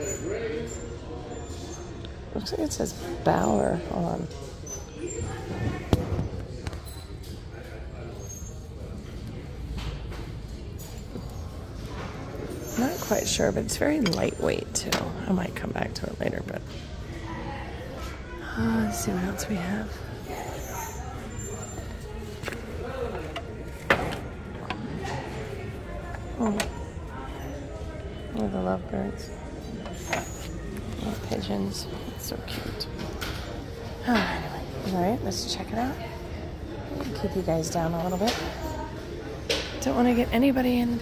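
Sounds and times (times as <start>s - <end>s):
faint background voices: 0.0s - 41.0s.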